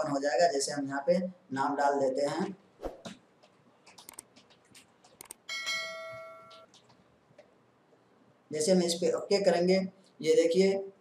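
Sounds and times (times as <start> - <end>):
bell-like electronic chime: 5.5 - 6.7.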